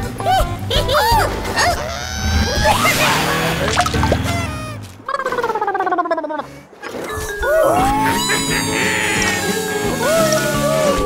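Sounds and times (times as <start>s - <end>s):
light background music: 0.0s - 4.7s
cartoon character giggling: 0.2s - 6.5s, 7.7s - 9.4s.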